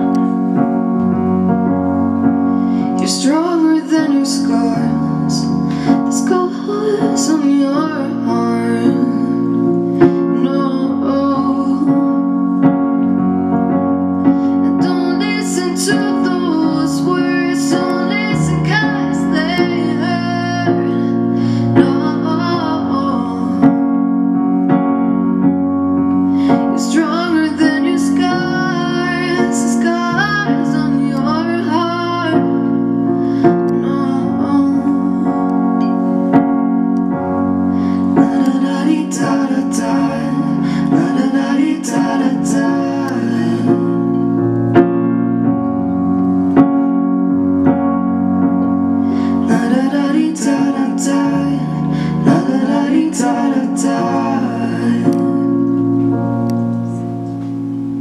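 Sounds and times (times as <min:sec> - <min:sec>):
piano chords: 0:00.0 - 0:58.0
woman singing: 0:03.0 - 0:09.6, 0:10.3 - 0:12.4, 0:14.7 - 0:21.0, 0:21.8 - 0:23.8, 0:26.8 - 0:32.7, 0:33.7 - 0:35.5.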